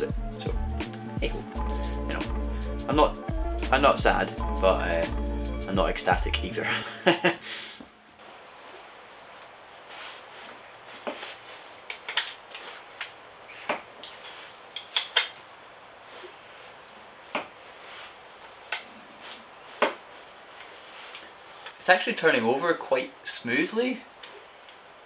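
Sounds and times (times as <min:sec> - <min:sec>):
faint background hiss: 0:00.0 - 0:25.0
tools clinking on metal: 0:11.9 - 0:12.4, 0:14.0 - 0:15.4.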